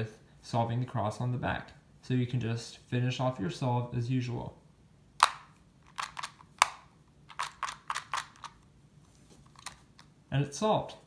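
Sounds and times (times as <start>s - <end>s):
puzzle wheels clicking: 5.9s - 8.6s.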